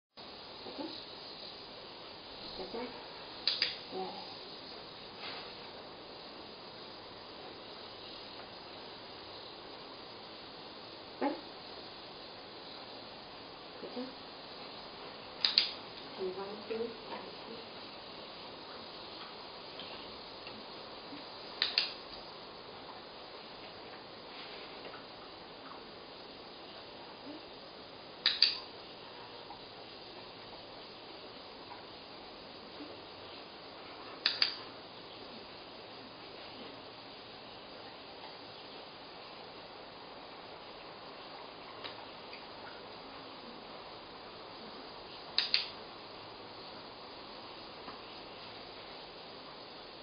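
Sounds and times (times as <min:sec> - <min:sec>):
electric fan noise: 0:00.2 - 0:50.0
clicker clicks: 0:03.4 - 0:03.8, 0:15.4 - 0:15.8, 0:21.6 - 0:22.0, 0:28.2 - 0:28.6, 0:34.2 - 0:34.6, 0:45.4 - 0:45.7.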